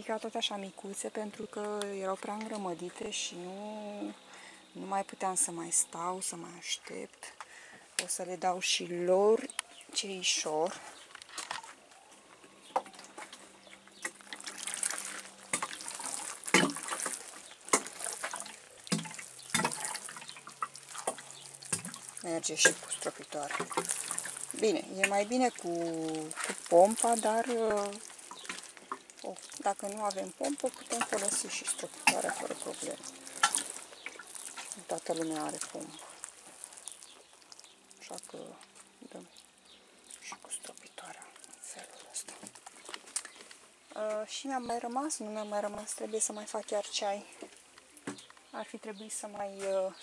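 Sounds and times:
watering can sprinkling: 13.2s - 43.6s.

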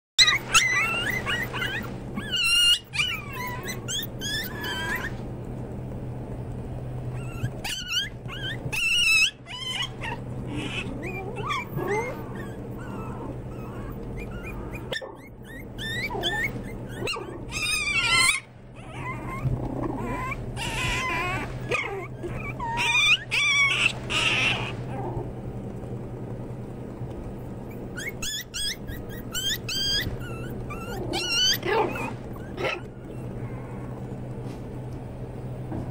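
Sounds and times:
puppies yipping and whimpering: 0.2s - 5.3s, 7.0s - 25.3s, 27.6s - 34.4s
steady low hum: 0.2s - 35.9s.

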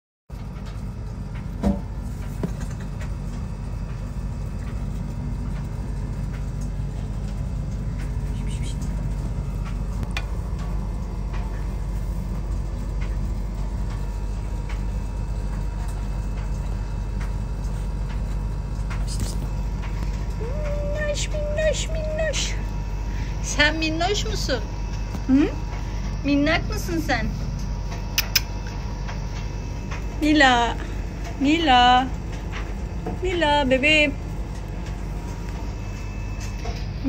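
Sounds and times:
low mechanical hum and rumble: 0.3s - 37.0s
short clicks: 28.2s - 28.5s.

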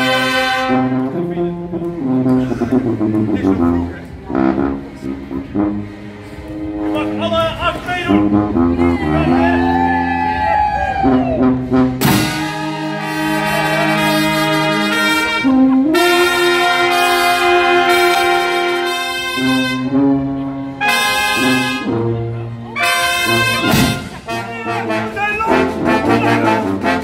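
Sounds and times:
street brass band playing: 0.0s - 27.0s.

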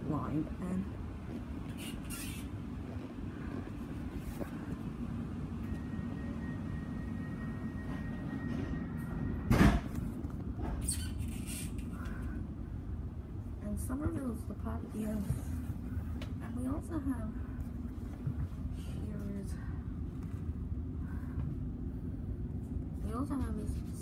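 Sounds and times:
train carriage rumble: 0.0s - 24.0s.

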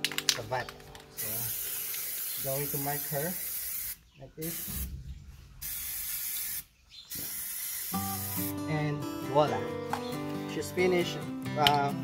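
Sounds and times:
spray paint hissing: 1.2s - 8.6s.

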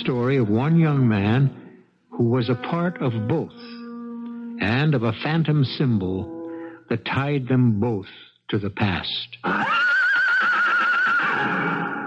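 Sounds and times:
horse whinnying: 9.4s - 12.0s.

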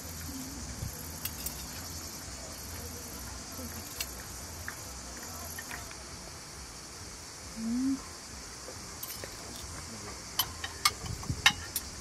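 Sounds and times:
insects chirring: 0.0s - 12.0s
cutlery clinking against plates: 1.2s - 1.8s, 9.0s - 12.0s.

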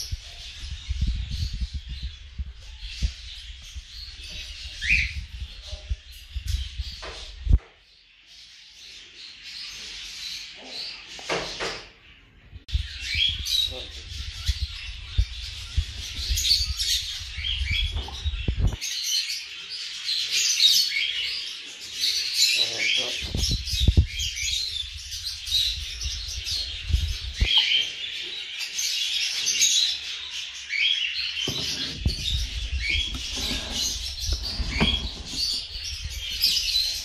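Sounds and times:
parrot chicks chirping: 0.0s - 37.0s
low rumble of box handled: 31.5s - 36.8s.

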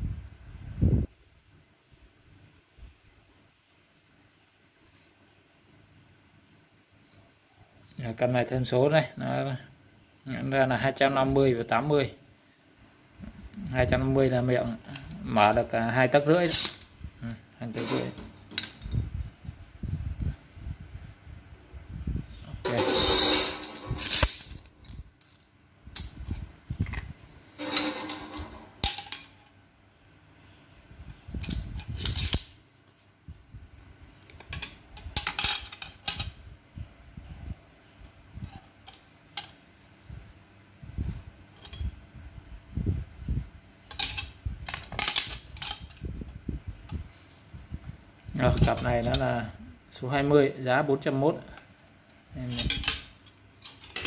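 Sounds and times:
clamps clattering: 17.7s - 19.0s, 22.7s - 25.4s, 27.6s - 29.4s, 52.5s - 54.0s
metal clamps clinking: 17.8s - 19.1s, 22.7s - 25.4s, 27.6s - 29.4s, 43.9s - 46.0s, 52.5s - 54.0s.

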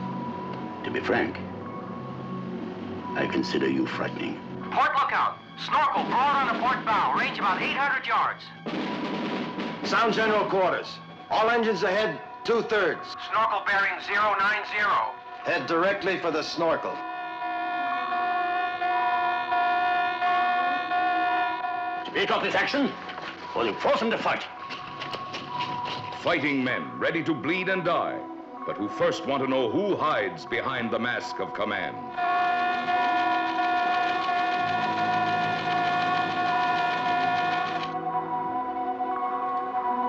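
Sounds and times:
orchestral film score: 0.0s - 40.0s
harsh alarm tone: 4.6s - 26.2s, 32.0s - 38.6s.

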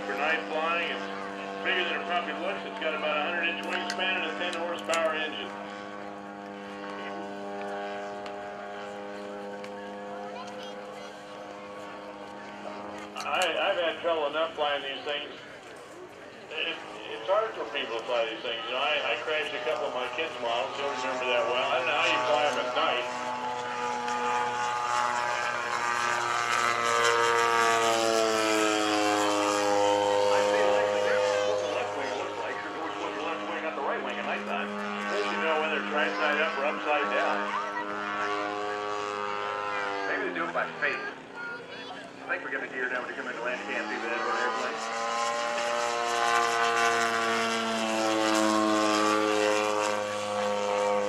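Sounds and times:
model plane engine drone: 0.0s - 51.0s.

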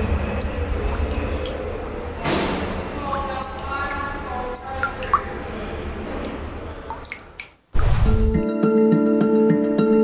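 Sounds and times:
water drops plinking: 0.0s - 7.6s.

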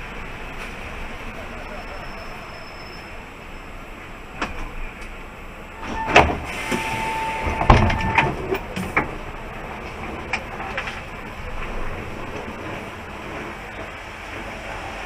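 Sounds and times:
bus cab noise: 0.0s - 15.0s.

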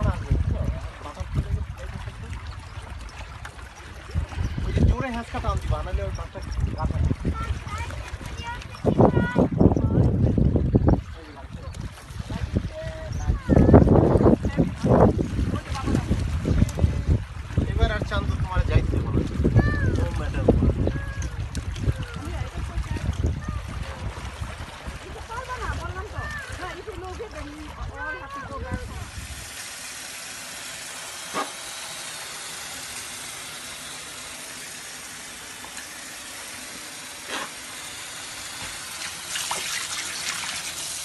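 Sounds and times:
tap water running into sink: 28.0s - 41.0s.

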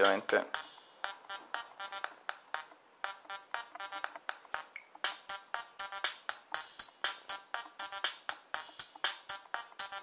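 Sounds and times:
synth bassline and drum machine: 0.0s - 10.0s.

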